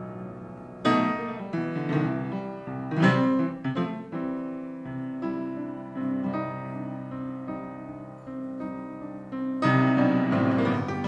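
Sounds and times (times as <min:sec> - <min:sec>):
piano blues chords: 0:00.0 - 0:11.0.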